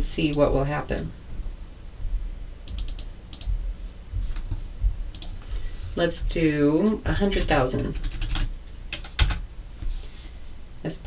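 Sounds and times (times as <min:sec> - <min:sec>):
computer mouse clicking: 0:02.6 - 0:03.5, 0:05.1 - 0:05.4, 0:08.1 - 0:09.4.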